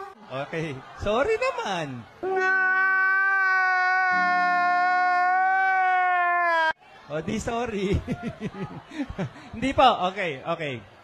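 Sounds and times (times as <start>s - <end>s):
man wailing cry: 2.3s - 6.7s.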